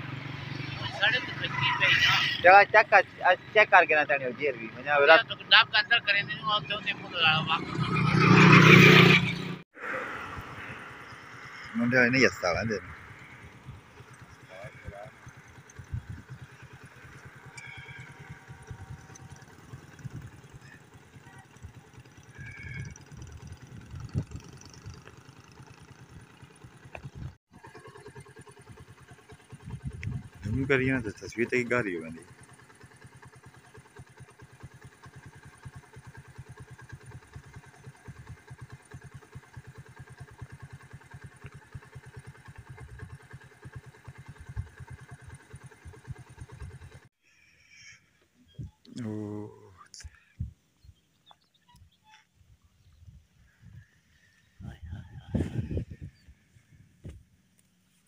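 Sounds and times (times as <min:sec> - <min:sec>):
small engine running: 0:00.0 - 0:48.0.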